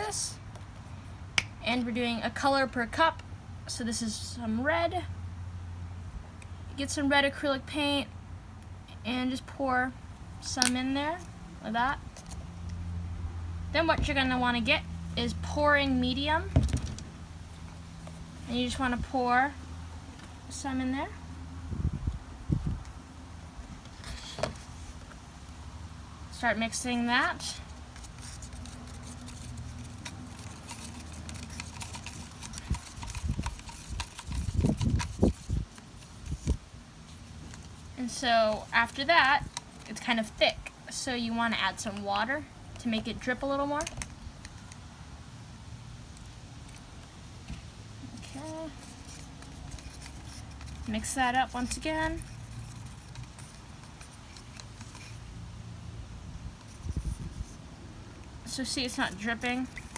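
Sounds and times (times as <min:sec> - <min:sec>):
stick stirring paint in cup: 0:26.4 - 0:44.8, 0:48.2 - 0:55.4, 0:56.4 - 0:59.9.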